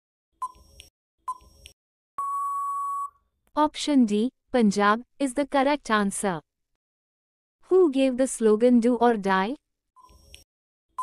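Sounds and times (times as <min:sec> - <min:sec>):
long loud beep: 0:02.2 - 0:03.2.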